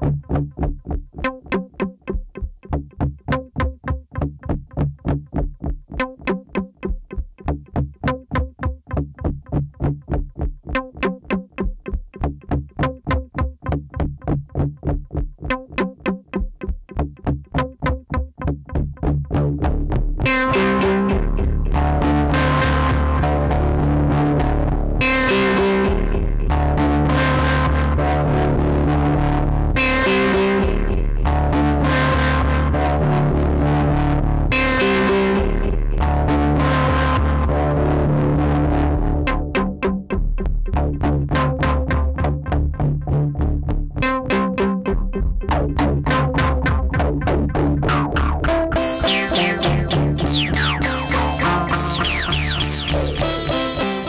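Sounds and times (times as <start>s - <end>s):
bass-heavy synthesizer pattern: 19.6s - 44.1s, 44.9s - 54.0s.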